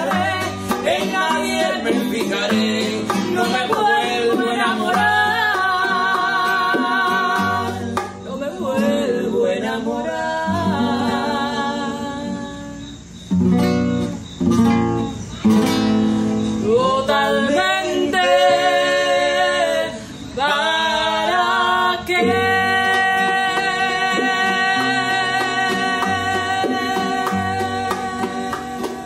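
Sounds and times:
woman singing a ballad: 0.0 - 12.9, 16.6 - 29.0
acoustic guitar: 0.0 - 29.0.

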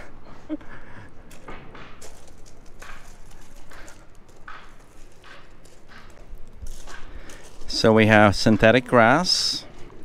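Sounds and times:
footsteps on gravel: 1.2 - 10.0.

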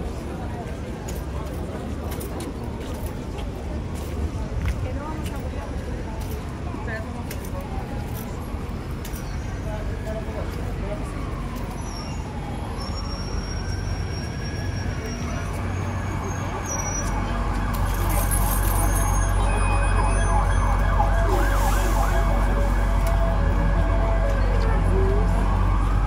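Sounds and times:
traffic rumble: 0.0 - 26.0
siren wailing: 11.0 - 26.0.

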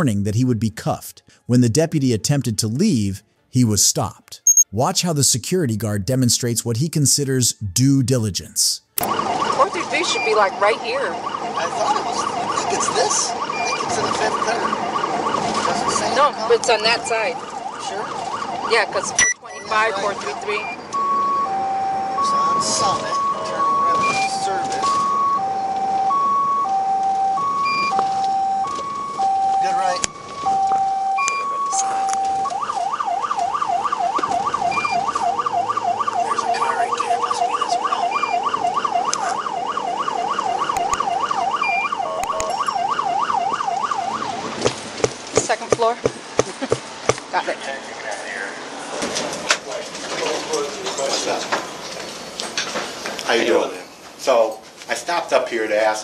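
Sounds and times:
two-tone electronic alarm: 4.4 - 4.8, 9.0 - 44.6.

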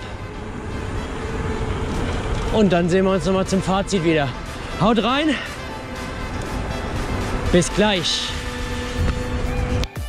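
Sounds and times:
bike tyres rolling on asphalt: 0.0 - 9.8.

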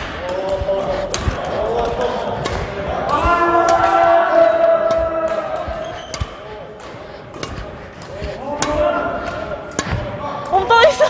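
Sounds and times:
racket striking shuttlecock: 0.0 - 10.6.

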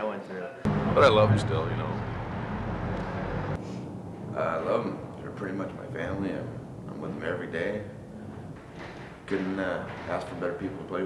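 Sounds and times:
vehicle engine rumbling: 0.7 - 10.9.

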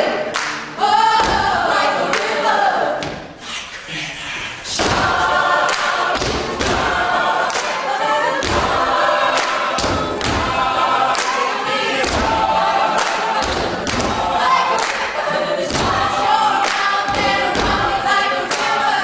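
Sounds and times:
a cappella choir singing: 0.0 - 19.0.

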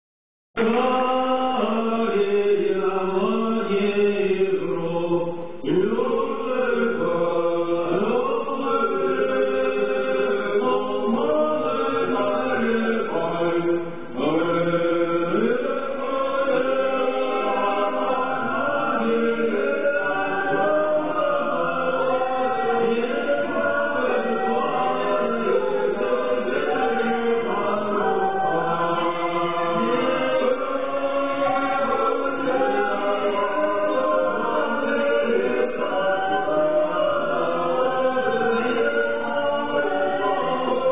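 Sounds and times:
choir singing slow chant: 0.6 - 40.9.

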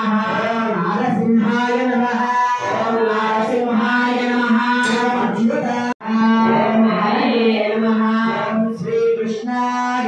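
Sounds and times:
mantras chanted on steady pitch: 0.0 - 10.0.

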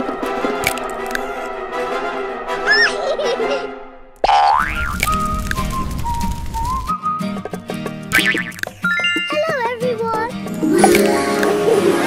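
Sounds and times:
background music: 0.0 - 4.4, 6.6 - 12.0.

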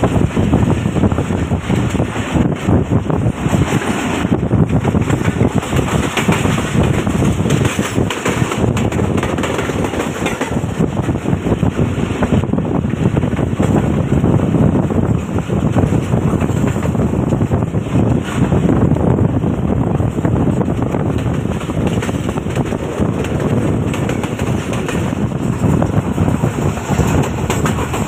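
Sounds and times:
train running on the track: 0.0 - 28.0
wind buffeting a microphone: 0.0 - 28.0.

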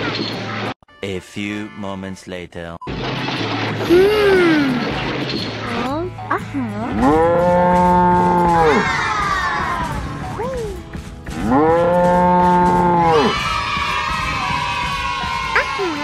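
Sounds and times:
cow mooing: 6.9 - 8.8, 11.3 - 13.2.

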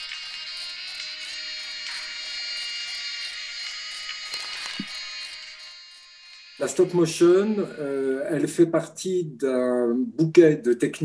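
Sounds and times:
sustained high ringing tones: 0.0 - 8.3.

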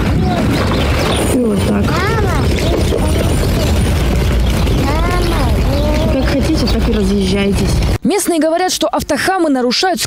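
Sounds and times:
slow-moving cars: 0.0 - 8.0.

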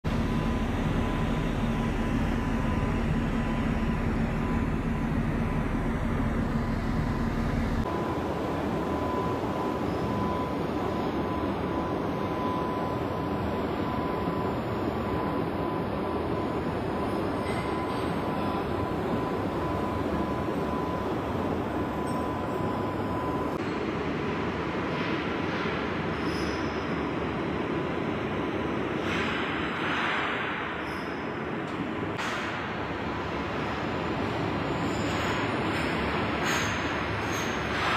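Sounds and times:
thin steady whine: 0.0 - 24.6
mechanical rumble and hiss: 0.1 - 37.9.

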